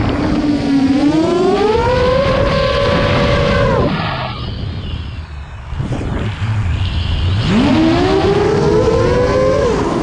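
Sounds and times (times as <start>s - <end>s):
drone motors whining: 0.0s - 10.0s
wind rumble on microphone: 0.0s - 10.0s.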